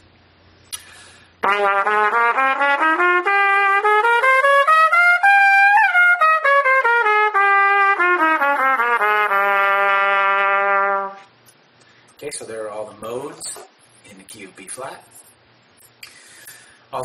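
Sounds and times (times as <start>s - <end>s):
trumpet playing scale: 1.4s - 11.3s.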